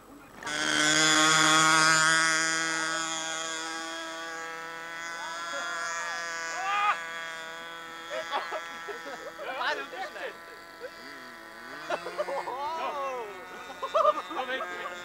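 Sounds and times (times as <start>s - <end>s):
model plane engine buzzing: 0.0s - 15.0s.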